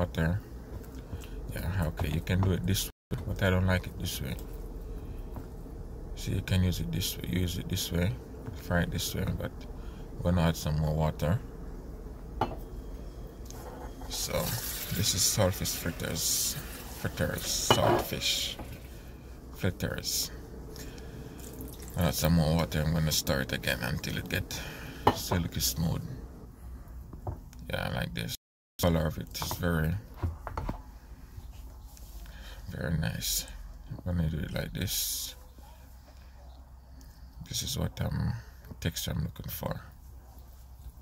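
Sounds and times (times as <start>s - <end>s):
low steady hum: 0.0s - 41.0s.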